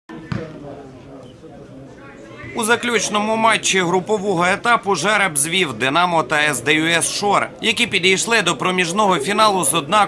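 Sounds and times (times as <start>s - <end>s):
football kick thud: 0.3s - 0.6s.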